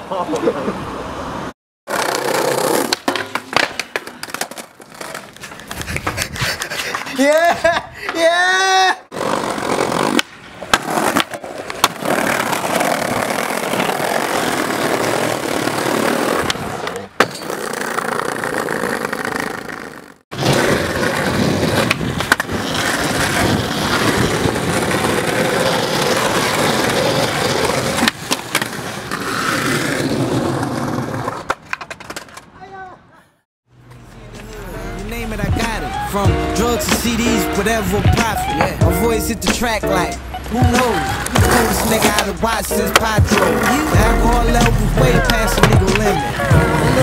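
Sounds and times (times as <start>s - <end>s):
skateboard wheels rolling on paving: 0.3s - 7.8s, 8.6s - 32.8s, 35.5s - 47.0s
skateboard clacks: 2.8s - 7.4s, 31.2s - 32.5s, 40.6s - 44.0s, 44.6s - 47.0s.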